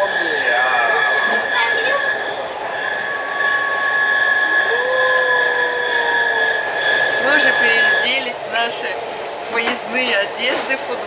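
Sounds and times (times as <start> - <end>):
held tone: 0.0 - 8.9
constant high whine: 0.0 - 11.0
train rolling noise: 0.0 - 11.0.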